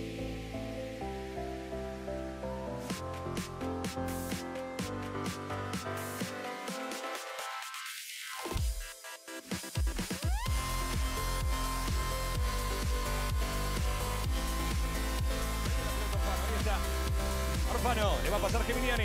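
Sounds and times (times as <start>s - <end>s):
electronic dance music: 2.8s - 19.0s.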